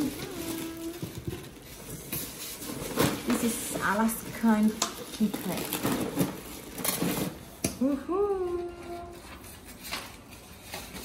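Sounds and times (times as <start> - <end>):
plastic wrapping rustling: 0.0 - 11.0.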